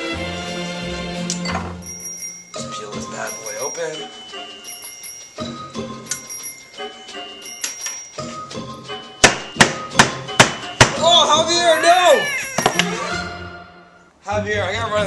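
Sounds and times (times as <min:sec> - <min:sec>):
background music with bell-like tones: 0:01.3 - 0:13.7
knife chopping on cutting board: 0:09.2 - 0:11.0.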